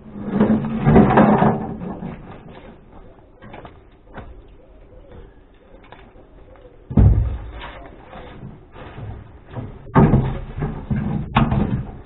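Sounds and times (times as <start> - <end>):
bird calling faintly: 2.4 - 8.5.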